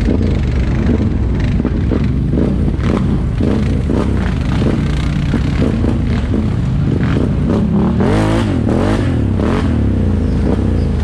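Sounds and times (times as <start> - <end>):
atv engines revving: 0.0 - 11.0.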